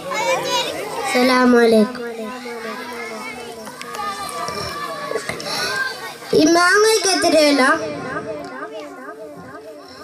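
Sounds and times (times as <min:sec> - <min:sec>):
children chattering: 0:00.0 - 0:10.0
boy singing amplified: 0:06.4 - 0:10.0.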